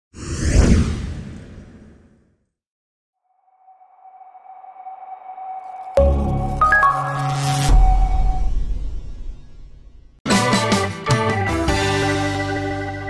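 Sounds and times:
whoosh: 0:00.2 - 0:02.2
high tone: 0:03.4 - 0:08.7.

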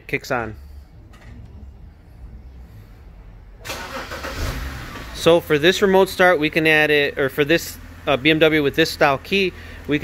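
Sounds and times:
car engine idling: 0:00.6 - 0:10.0.

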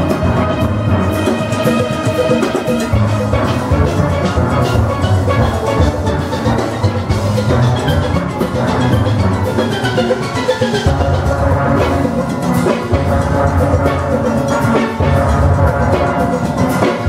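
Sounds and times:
drums keeping a quick beat: 0:00.0 - 0:17.0
steel band playing: 0:00.0 - 0:17.0.

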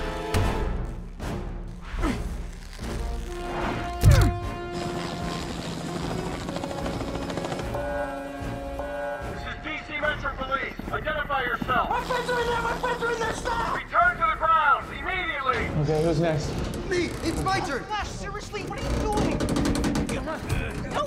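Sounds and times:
film score with held notes: 0:00.0 - 0:21.0.

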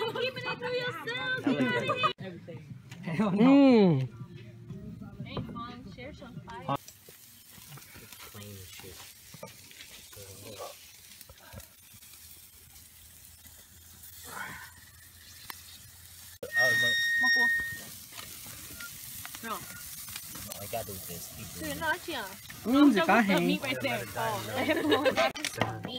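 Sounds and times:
meat sizzling on grill: 0:06.7 - 0:25.6
high-pitched tone: 0:16.4 - 0:17.9.

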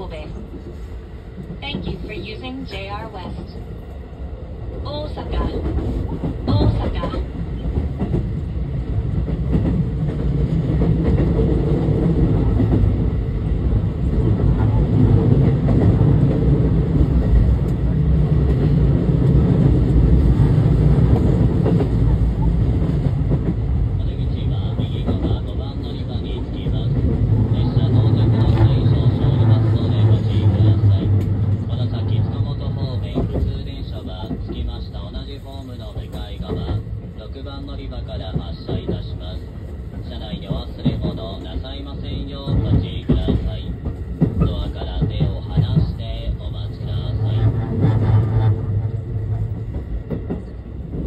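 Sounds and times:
train wheels rumbling on rail: 0:00.0 - 0:51.0.

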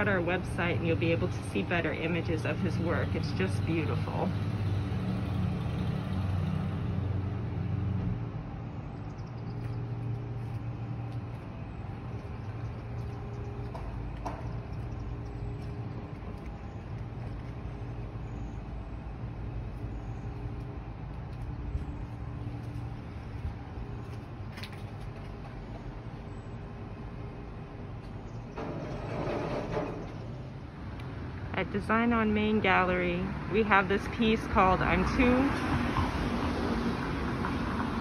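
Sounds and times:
motor vehicle engine idling: 0:08.2 - 0:28.7.

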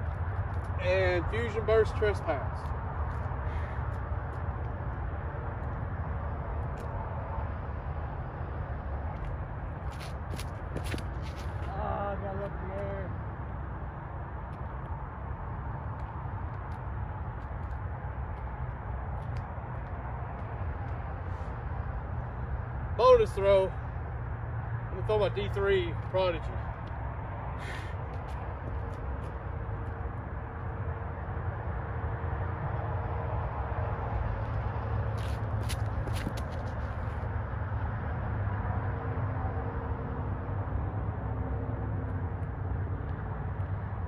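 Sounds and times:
outdoor background rumble: 0:00.0 - 0:44.0.

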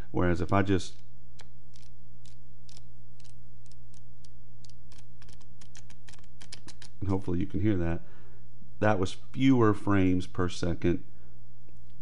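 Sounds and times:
steady low hum: 0:00.0 - 0:12.0
book pages flicking: 0:04.9 - 0:07.1.

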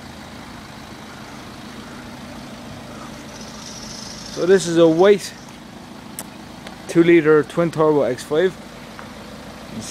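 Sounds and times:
car engine idling: 0:00.0 - 0:09.9.

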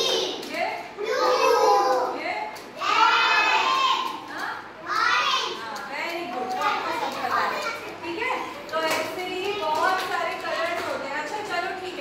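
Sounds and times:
children talking and calling out: 0:00.0 - 0:05.7, 0:06.4 - 0:08.6.

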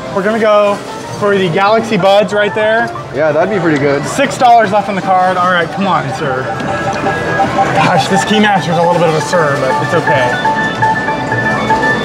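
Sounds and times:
electronic arcade game jingle: 0:00.0 - 0:12.0.

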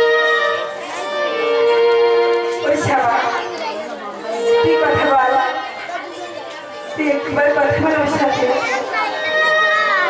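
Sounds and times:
stage music: 0:00.0 - 0:10.0.

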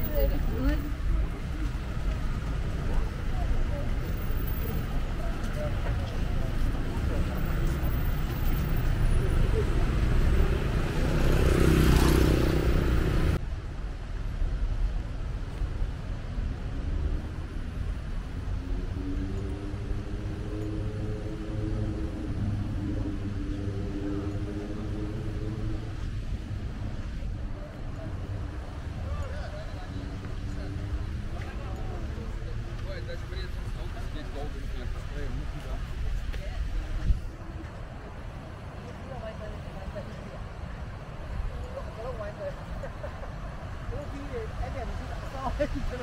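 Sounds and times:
road traffic passing: 0:00.0 - 0:46.0.

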